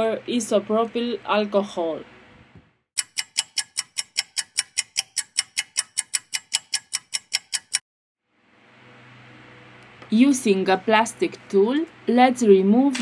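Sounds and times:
rapid even ticking: 3.0s - 7.8s.

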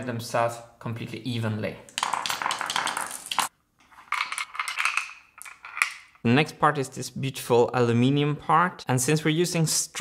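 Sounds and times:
marbles rolling in channels: 1.9s - 6.2s
steel marbles clicking and rattling: 1.9s - 6.2s.

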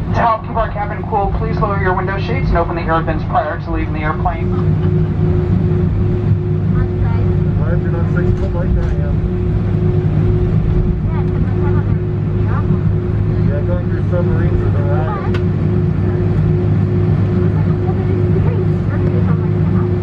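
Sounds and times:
aircraft cabin hum: 0.0s - 20.0s
faint passenger voices: 0.0s - 20.0s.

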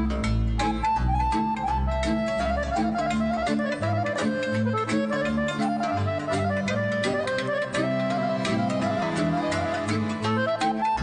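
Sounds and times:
accordion playing folk melody: 0.0s - 11.0s
strings: 0.0s - 11.0s.

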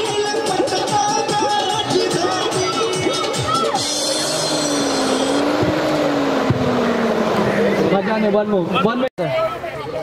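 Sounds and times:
song playing: 0.0s - 8.0s
motor hum: 3.8s - 8.6s.

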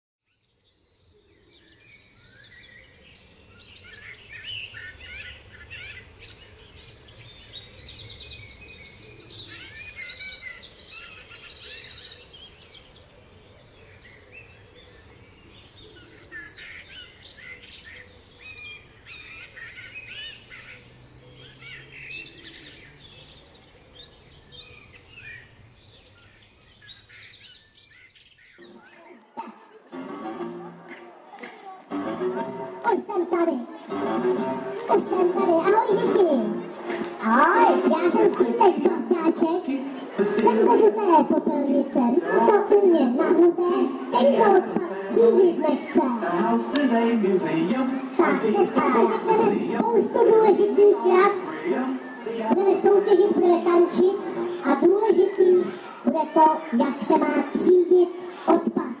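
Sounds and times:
birds singing and trilling: 0.2s - 29.9s, 32.2s - 58.8s.

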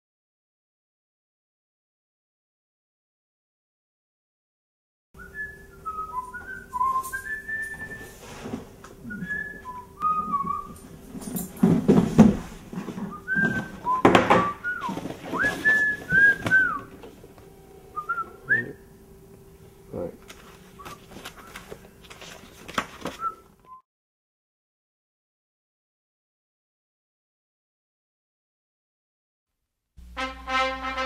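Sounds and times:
person whistling a tune: 5.2s - 8.3s, 9.0s - 10.8s, 13.1s - 17.0s, 17.9s - 18.8s, 23.2s - 23.8s
faint steady hum: 5.2s - 23.7s
knocks: 14.0s - 14.6s.

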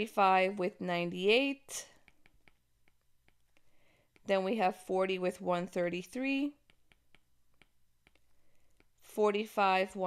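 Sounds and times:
stylus tapping on tablet screen: 1.2s - 10.0s.

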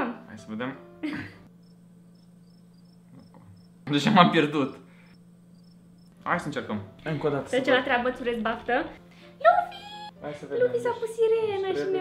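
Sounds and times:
low steady hum: 0.1s - 10.2s.

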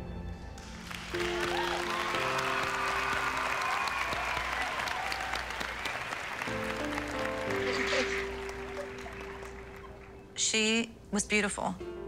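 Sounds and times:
music playing: 0.0s - 12.0s
audience applauding: 0.6s - 10.4s.

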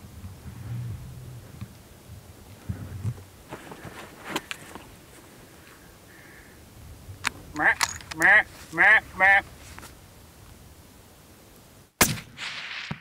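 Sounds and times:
wavering vocal calls: 7.5s - 9.6s
rifle shot echoing: 12.0s - 13.0s.

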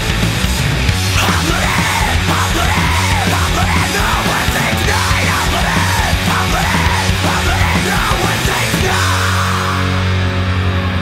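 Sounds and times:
heavy rock song: 0.0s - 11.0s
person yelling vocals: 1.1s - 9.9s.

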